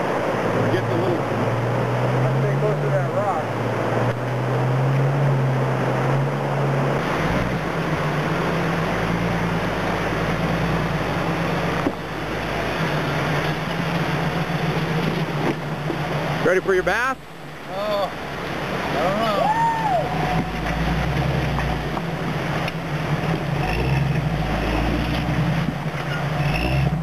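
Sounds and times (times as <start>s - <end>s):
creek water rushing: 0.0s - 27.0s
engine running: 0.0s - 27.0s.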